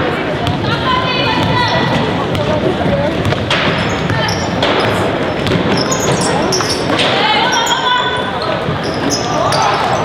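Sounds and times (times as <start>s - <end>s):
crowd and player voices: 0.0s - 10.0s
ball bouncing on hardwood court: 0.4s - 0.7s, 1.3s - 7.2s
sneakers squeaking on court: 1.4s - 10.0s.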